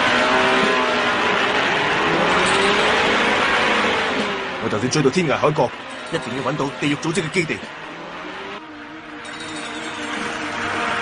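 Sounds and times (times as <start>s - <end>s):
continuous rush of noise: 0.0s - 11.0s
vehicle engine running: 0.0s - 11.0s.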